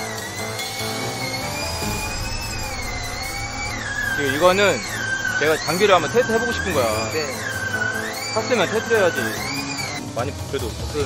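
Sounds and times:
machine high-pitched whine: 0.5 - 10.0
low hum: 1.3 - 8.0.

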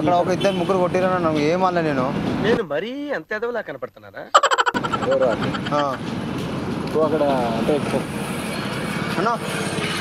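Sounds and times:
person speaking: 4.4 - 6.0
vehicle engines going by: 4.4 - 10.0.

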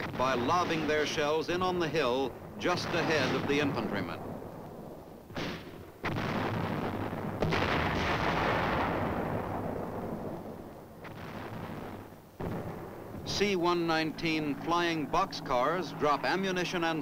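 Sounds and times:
mortar booms with rumble: 0.0 - 4.5, 5.3 - 13.3.

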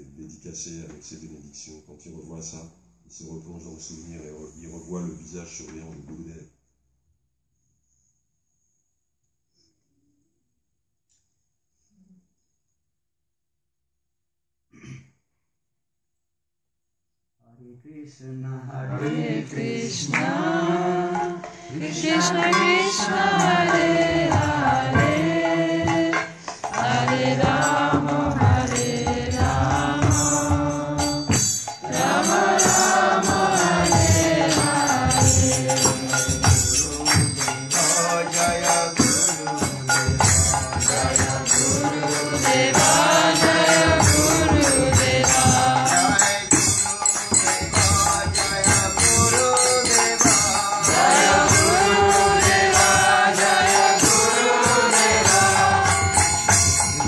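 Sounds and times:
jingling percussion: 18.9 - 57.0
drum steady beat: 19.2 - 57.0.

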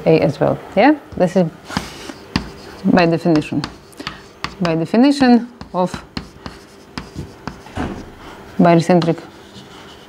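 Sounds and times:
chalk writing on a blackboard: 1.6 - 10.0.

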